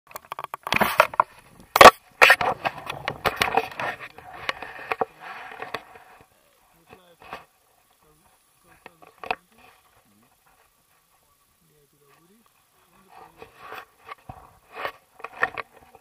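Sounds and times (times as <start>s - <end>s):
rubbing and rustling: 12.0s - 16.0s.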